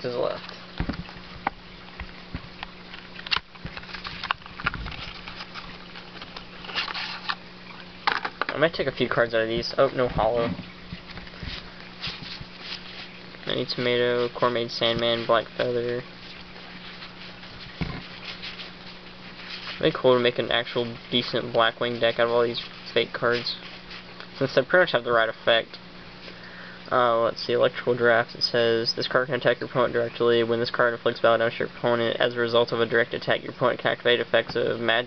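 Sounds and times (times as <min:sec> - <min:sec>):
cards and box rustling: 0:02.9 - 0:07.4
paper cards sliding and rubbing: 0:05.0 - 0:07.4, 0:11.3 - 0:13.2.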